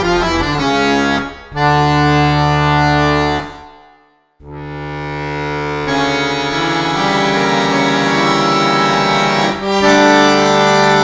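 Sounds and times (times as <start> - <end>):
button accordion playing chords: 0.0 - 11.0.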